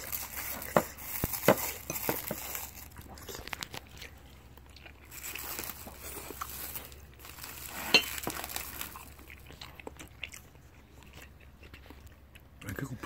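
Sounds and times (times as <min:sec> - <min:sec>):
person chewing noodles: 0:00.0 - 0:13.0.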